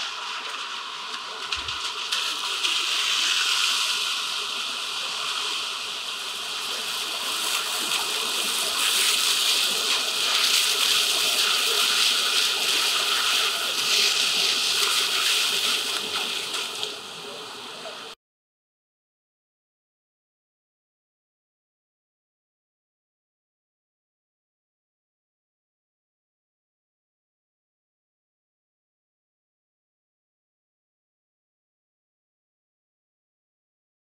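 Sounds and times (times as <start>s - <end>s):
car tyres hissing on wet road: 0.6s - 17.0s.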